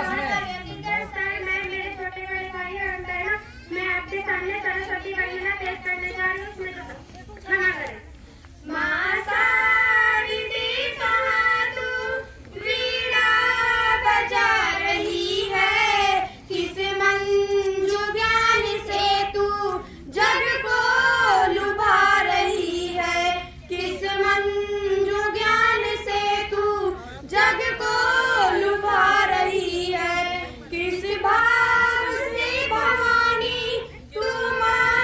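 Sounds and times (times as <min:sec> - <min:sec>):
girls singing unaccompanied: 0:00.0 - 0:06.6, 0:08.6 - 0:35.0.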